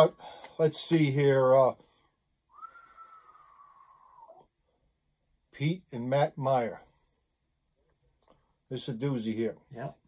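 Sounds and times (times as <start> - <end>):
man whistling: 2.5 - 4.5.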